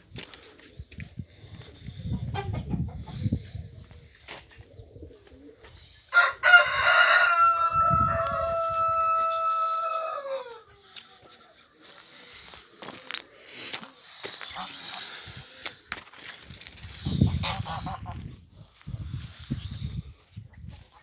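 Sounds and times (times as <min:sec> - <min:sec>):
rooster crowing: 0:06.1 - 0:10.8.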